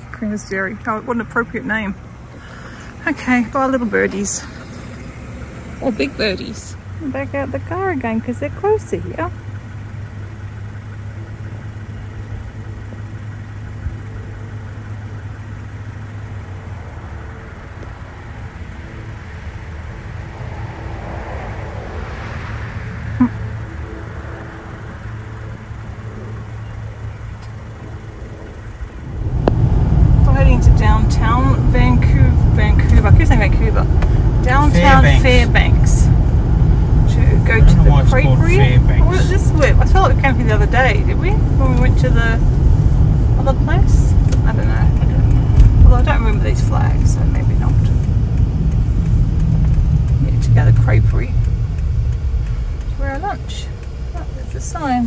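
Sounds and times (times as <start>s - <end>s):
car engine idling: 0.0s - 55.0s
heavy low rumble: 0.0s - 55.0s
passing vehicle: 0.0s - 55.0s
bending voice-like sounds: 34.5s - 35.4s.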